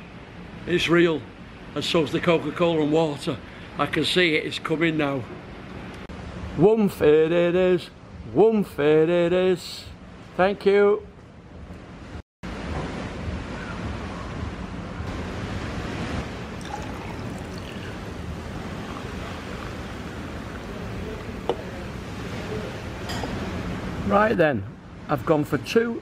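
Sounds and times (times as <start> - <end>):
cola fizzing in glass: 16.4 - 23.1
cola pouring over ice: 16.5 - 22.0
ice clinking: 16.6 - 21.9.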